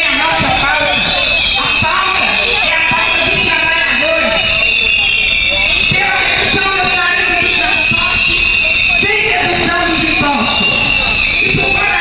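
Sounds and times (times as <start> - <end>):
harsh steady buzz: 0.0 - 12.0
loud distorted amplified voice: 0.0 - 12.0.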